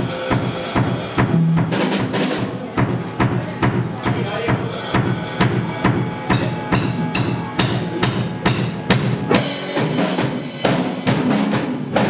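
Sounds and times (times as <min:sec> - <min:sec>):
live rock band: 0:00.0 - 0:03.2, 0:04.0 - 0:12.0
drum kit: 0:00.0 - 0:12.0.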